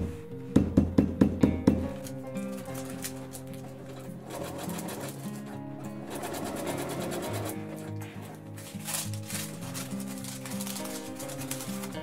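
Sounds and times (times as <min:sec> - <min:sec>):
background music: 0:00.0 - 0:12.0
sewing machine stitching: 0:02.8 - 0:07.9.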